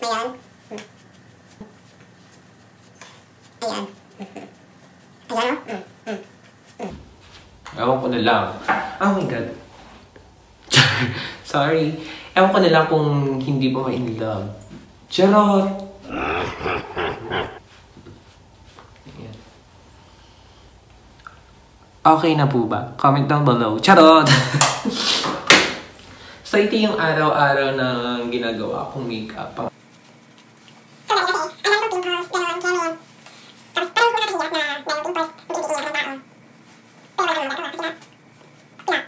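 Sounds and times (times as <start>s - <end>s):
man laughing: 16.0s - 17.6s, 24.2s - 25.2s
man making playful vocal sounds: 16.0s - 17.6s.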